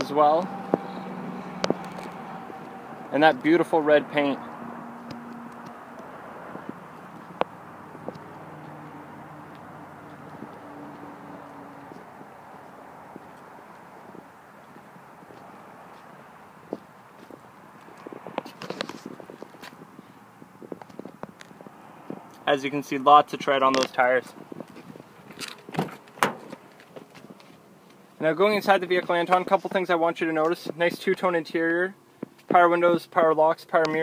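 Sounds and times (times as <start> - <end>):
footsteps on pavement: 0.5 - 22.4, 23.7 - 29.7, 32.2 - 32.6.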